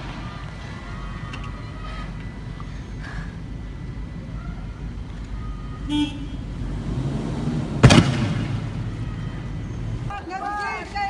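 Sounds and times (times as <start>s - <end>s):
armoured vehicle engine rumble: 0.0s - 11.0s
loud bang: 7.8s - 8.9s.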